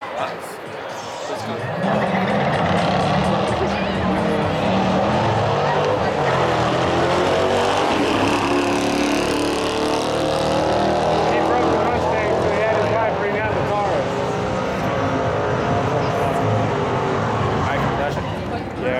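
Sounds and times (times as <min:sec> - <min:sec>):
cars accelerating with engines revving: 0:01.3 - 0:18.9.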